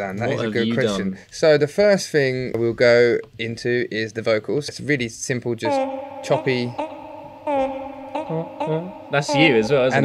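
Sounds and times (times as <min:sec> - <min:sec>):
chopped vocal samples: 0:05.6 - 0:10.0.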